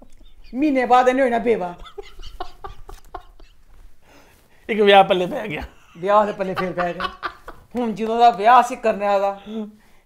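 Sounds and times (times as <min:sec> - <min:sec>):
man laughing: 0:01.5 - 0:03.7, 0:05.5 - 0:08.0.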